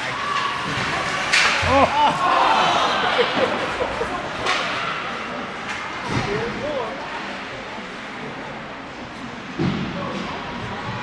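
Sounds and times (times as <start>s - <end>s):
spectators shouting: 0.0s - 3.5s
indoor rink hall noise: 0.0s - 11.0s.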